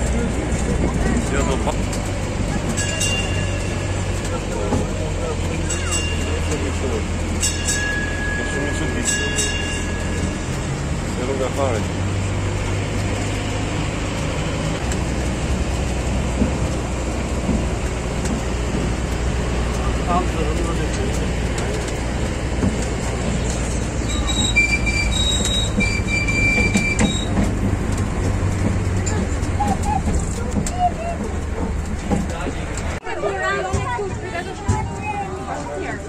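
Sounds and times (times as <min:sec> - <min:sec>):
people's voices: 0:00.0 - 0:15.1, 0:17.7 - 0:25.0, 0:28.6 - 0:36.0
road train engine droning: 0:00.0 - 0:36.0.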